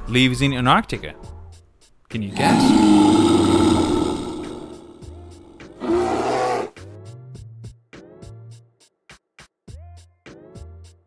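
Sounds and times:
cartoon bear roar: 2.2s - 6.8s.

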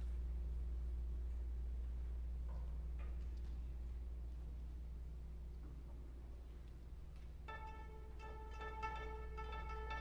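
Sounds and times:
low steady hum: 0.0s - 10.0s
string orchestra playing: 7.5s - 10.0s.

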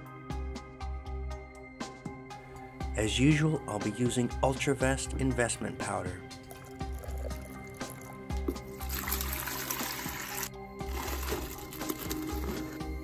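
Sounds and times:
background music: 0.0s - 13.0s
water pouring into plastic jug: 5.8s - 13.0s.

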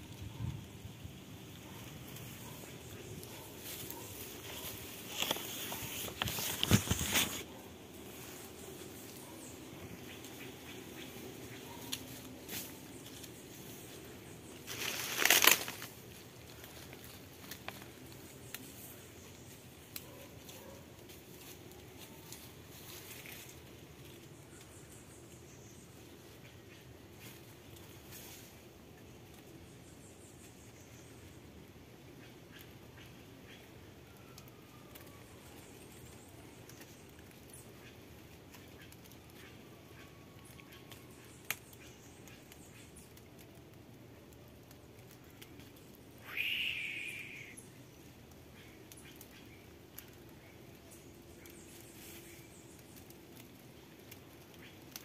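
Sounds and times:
dry leaves rustling and crackling: 0.1s - 29.6s, 33.4s - 55.0s
loud crunch of leaves: 11.8s - 18.2s.

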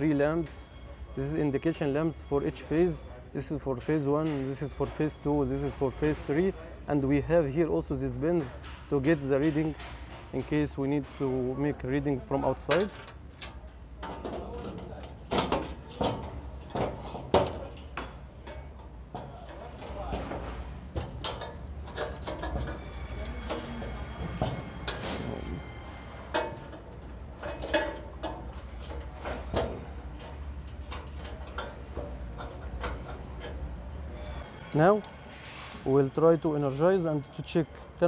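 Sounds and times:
steady low hum: 9.8s - 35.9s
metal panel knocks and clicks: 14.0s - 25.3s.

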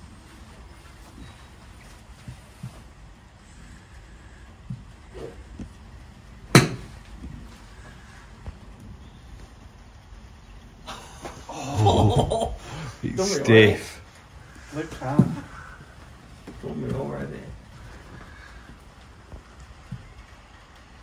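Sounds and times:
golf club striking ball: 6.5s - 7.0s.

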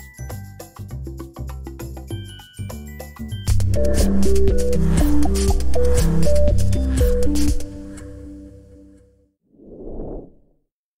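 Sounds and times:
background music: 0.0s - 9.2s
whoosh sound effect: 3.6s - 7.9s, 9.6s - 10.5s.

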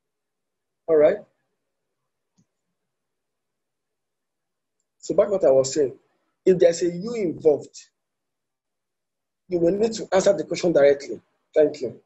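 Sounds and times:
man speaking: 0.9s - 1.3s, 5.0s - 7.9s, 9.5s - 12.0s.

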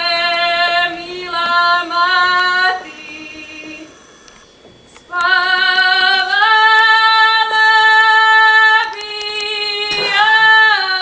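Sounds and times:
woman singing unaccompanied: 0.0s - 3.9s, 5.1s - 11.0s.

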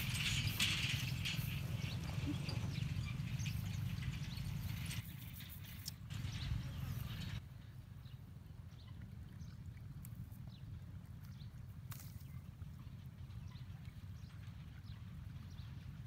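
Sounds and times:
wind rumbling on microphone: 0.0s - 16.0s.

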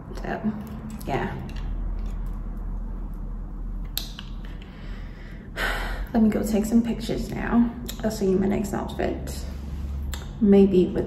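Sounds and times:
woman speaking: 0.0s - 1.6s, 6.0s - 9.6s, 10.2s - 11.0s
woman breathing in: 4.6s - 6.1s.

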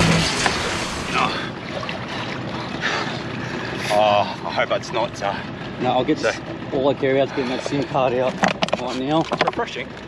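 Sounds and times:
water sloshing against hull: 0.0s - 10.0s.

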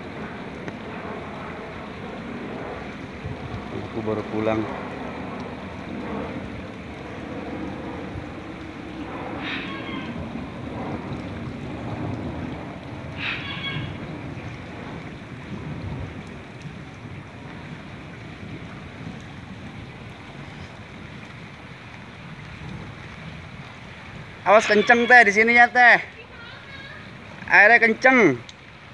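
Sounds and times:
floodwater rushing: 0.0s - 28.9s
wind buffeting microphone: 0.0s - 28.9s
distant calls: 7.1s - 10.6s, 13.1s - 14.6s.

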